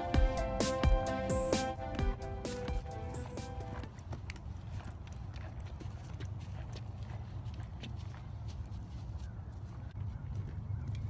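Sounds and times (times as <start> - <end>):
footsteps on dry ground: 1.6 - 11.0.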